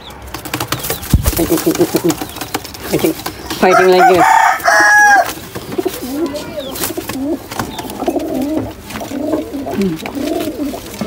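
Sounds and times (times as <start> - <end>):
wings flapping: 0.2 - 11.0
pigeons cooing: 0.7 - 11.0.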